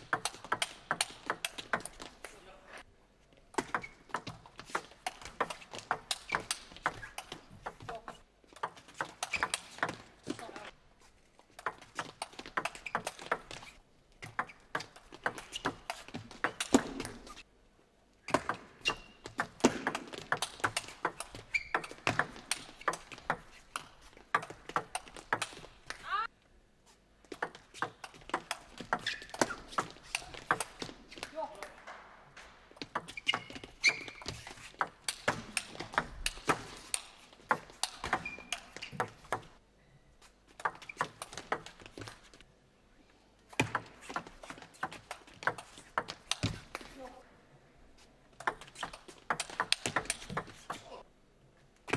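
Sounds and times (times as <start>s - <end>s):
table tennis ball clicking: 0.1s - 2.1s
shoes squeaking on floor: 3.6s - 17.4s, 18.8s - 26.3s, 26.9s - 31.6s, 32.3s - 39.6s, 40.2s - 42.4s.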